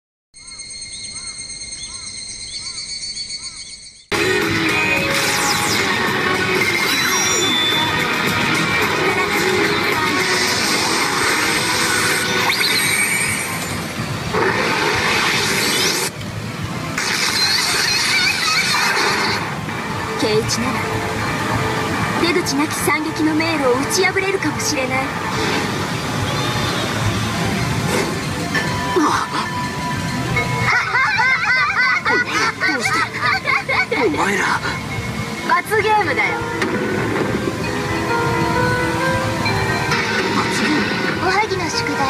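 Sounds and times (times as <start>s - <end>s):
electronic tones with chirps: 0.4s - 4.2s, 6.6s - 8.2s
pachinko machine music and effects: 4.1s - 42.0s
background din: 34.8s - 42.0s.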